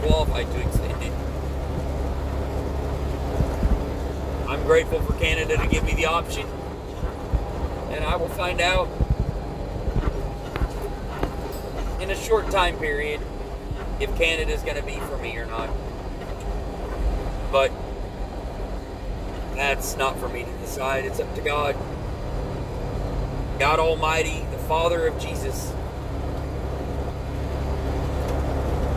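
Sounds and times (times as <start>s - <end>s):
low bumps: 0.0s - 28.9s
road noise: 0.0s - 28.9s
truck engine rumbling: 0.0s - 28.9s.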